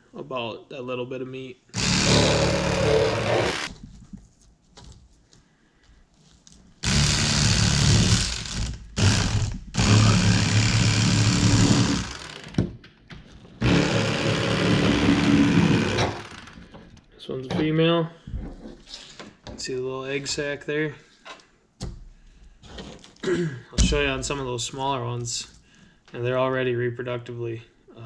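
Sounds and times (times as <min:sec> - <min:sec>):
electric fillet knife buzzing: 0:01.8 - 0:03.7, 0:06.8 - 0:12.6, 0:13.6 - 0:16.6.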